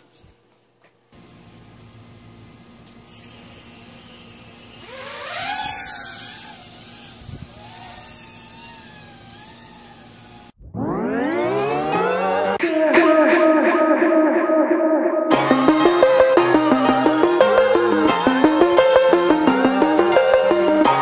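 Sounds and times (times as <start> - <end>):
quadcopter motors whining: 1.2 - 13.0.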